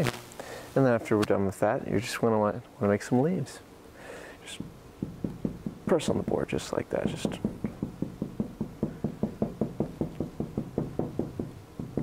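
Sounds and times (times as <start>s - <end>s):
marker tapping on whiteboard: 4.6s - 6.1s, 7.1s - 12.0s.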